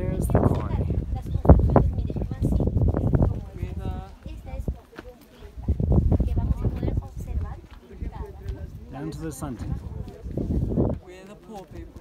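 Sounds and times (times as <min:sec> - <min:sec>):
low steady microphone rumble: 0:00.0 - 0:11.2
people talking in background: 0:00.0 - 0:12.0.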